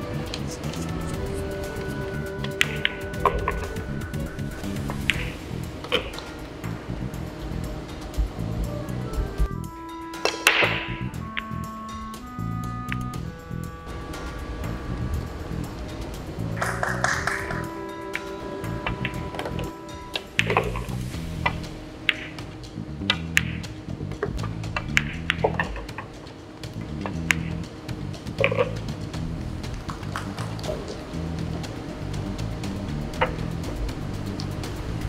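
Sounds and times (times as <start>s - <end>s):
background music: 0.0s - 35.0s
pool cue and balls clicking: 21.5s - 27.7s, 28.3s - 28.9s.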